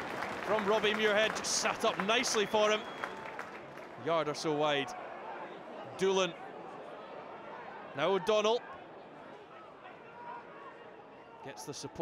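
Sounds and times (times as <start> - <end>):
stadium crowd murmur: 0.0 - 12.0.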